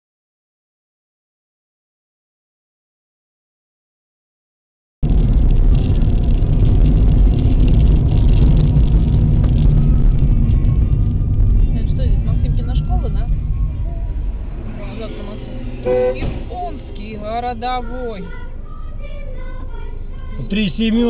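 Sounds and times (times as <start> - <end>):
car engine and road rumble: 5.0 - 21.0
faint voices: 9.9 - 21.0.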